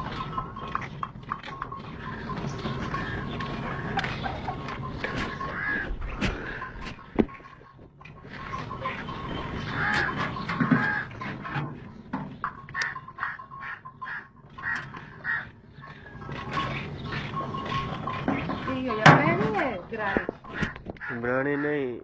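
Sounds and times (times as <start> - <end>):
people's voices: 16.3 - 22.0.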